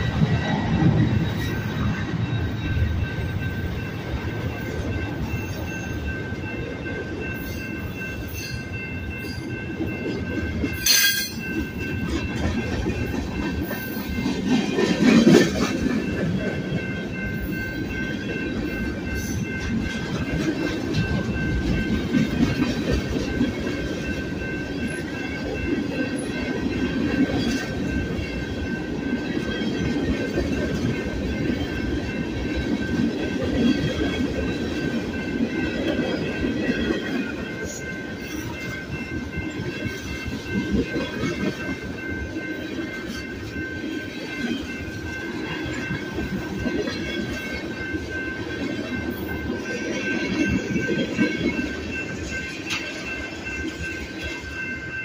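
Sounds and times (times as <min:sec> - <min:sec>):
freight train wheels clattering: 0:00.0 - 0:55.0.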